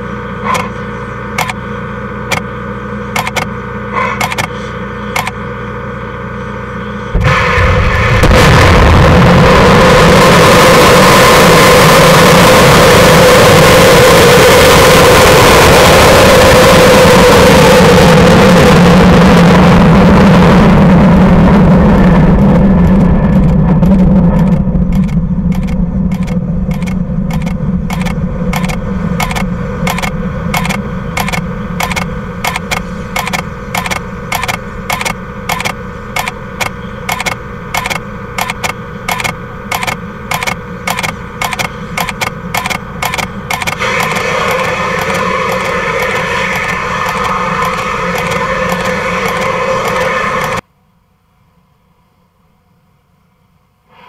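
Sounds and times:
regular ticking: 0:01.3 - 0:01.6, 0:03.1 - 0:03.5, 0:24.4 - 0:50.0
rocket launch rumble: 0:07.1 - 0:50.6.

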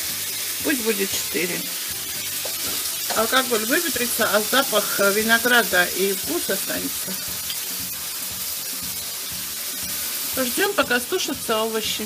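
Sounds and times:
meat frying in a pan: 0:00.0 - 0:12.0.

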